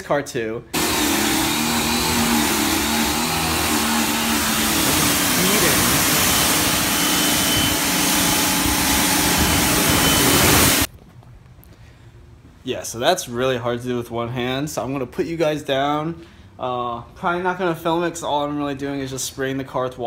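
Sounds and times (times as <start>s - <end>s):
faint motor hum: 0.8s - 10.9s
pressure washer spraying water: 0.8s - 10.9s.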